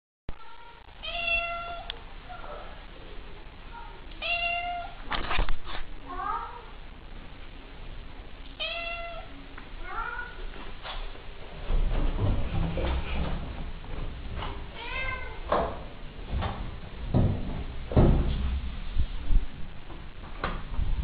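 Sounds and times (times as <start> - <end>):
low rumbling noise: 0.3 - 21.0
cat meowing: 0.4 - 1.9, 4.2 - 5.0, 8.6 - 9.3, 14.8 - 15.4.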